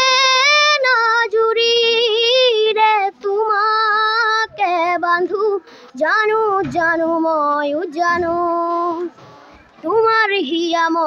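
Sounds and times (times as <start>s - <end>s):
boy singing unaccompanied: 0.0s - 11.0s.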